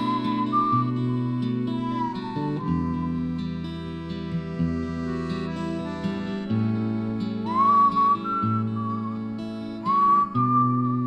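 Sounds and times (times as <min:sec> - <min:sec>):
person whistling melody: 0:00.0 - 0:11.0
instrumental backing chords and bass: 0:00.8 - 0:11.0.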